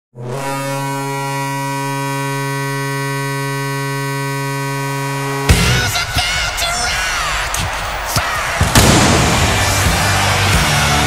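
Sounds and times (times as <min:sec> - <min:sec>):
goal horn blast: 0:00.2 - 0:11.0
music and noise: 0:05.5 - 0:11.0
cannon shot: 0:08.5 - 0:10.1.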